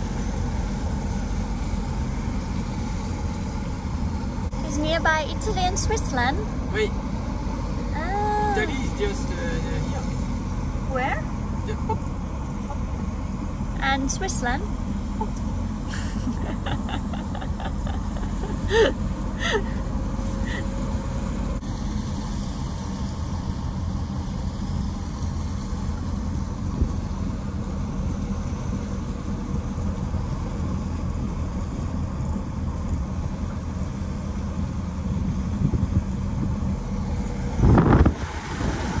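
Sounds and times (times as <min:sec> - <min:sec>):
van engine and road noise: 0:00.0 - 0:39.0
rush of noise: 0:34.9 - 0:39.0.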